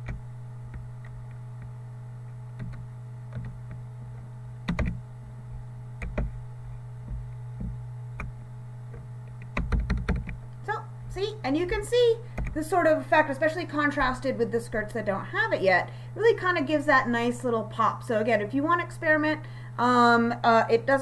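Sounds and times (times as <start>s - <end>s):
low electrical hum: 0.0s - 21.0s
keyboard and mouse clicks: 2.6s - 3.8s, 4.7s - 5.0s, 6.0s - 6.4s, 9.3s - 10.4s.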